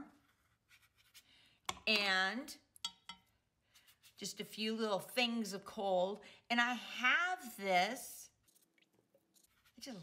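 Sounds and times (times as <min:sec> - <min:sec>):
brush strokes on paper: 0:08.3 - 0:10.0.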